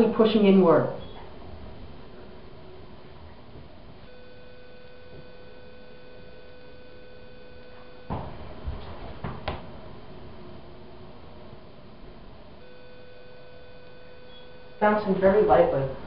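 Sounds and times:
elevator hum: 0.0 - 16.0.

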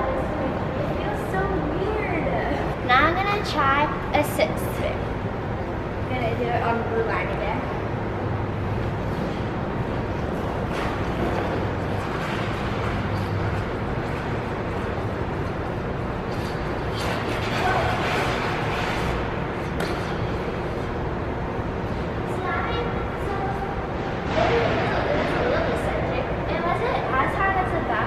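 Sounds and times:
indoor ice rink background noise: 0.0 - 28.0
skate blades scraping on ice: 16.3 - 20.4.

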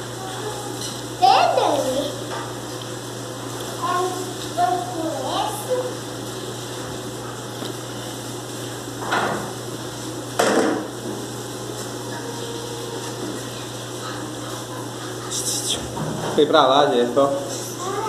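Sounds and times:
steady hum: 0.0 - 18.0.

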